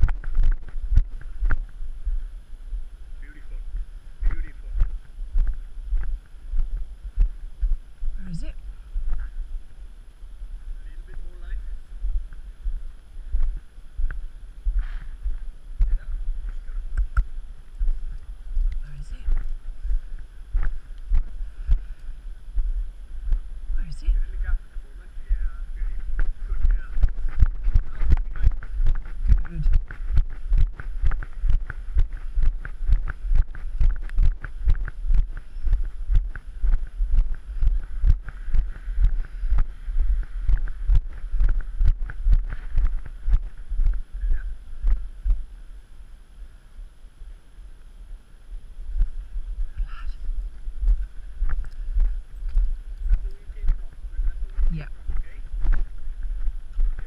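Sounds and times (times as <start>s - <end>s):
footsteps on pavement: 0.0s - 2.9s, 3.6s - 10.2s, 11.9s - 24.4s, 25.5s - 45.5s, 48.9s - 57.0s
wind buffeting microphone: 0.0s - 45.6s, 48.6s - 57.0s.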